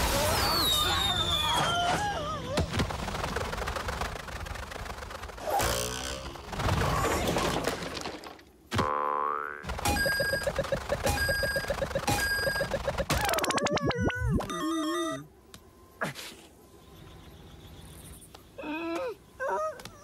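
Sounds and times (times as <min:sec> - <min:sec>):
rising whistle-like glide: 0:00.1 - 0:01.8
quick repeated pitched taps: 0:09.6 - 0:13.9
cartoon boing: 0:13.1 - 0:15.2.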